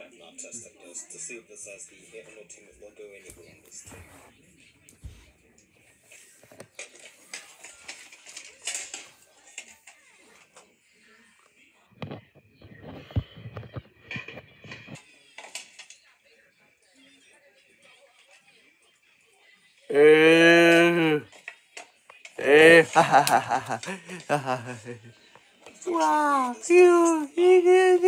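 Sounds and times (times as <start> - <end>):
faint television speech: 0.0 - 28.0.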